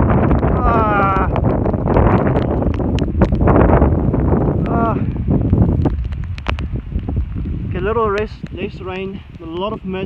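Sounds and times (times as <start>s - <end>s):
heavy rain: 0.0s - 10.0s
strong wind buffeting microphone: 0.0s - 10.0s.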